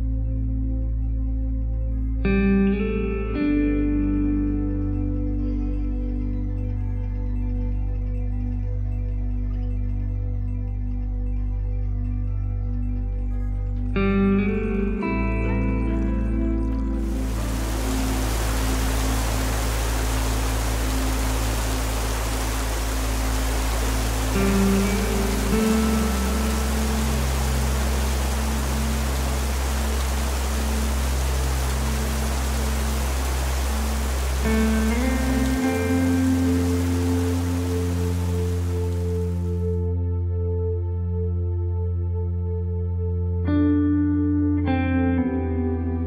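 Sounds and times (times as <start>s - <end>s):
slow ambient music: 0.0s - 46.0s
steady rain: 15.0s - 39.8s.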